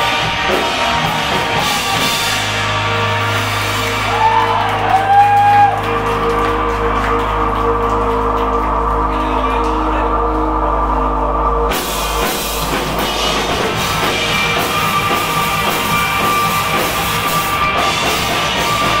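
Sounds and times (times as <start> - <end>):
guitar and bass ringing out: 0.0 - 19.0
rock band with drums: 0.0 - 19.0.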